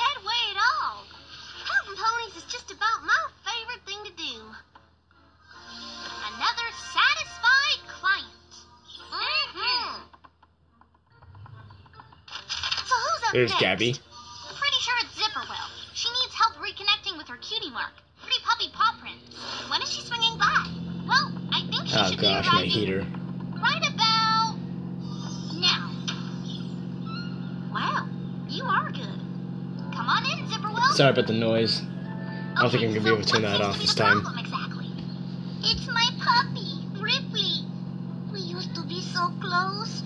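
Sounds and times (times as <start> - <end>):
cartoon dialogue: 12.9 - 14.0, 14.6 - 35.0, 35.6 - 37.7, 38.3 - 40.0
cartoon character speaking: 13.0 - 14.0, 19.8 - 26.6, 29.9 - 31.8, 32.6 - 34.9.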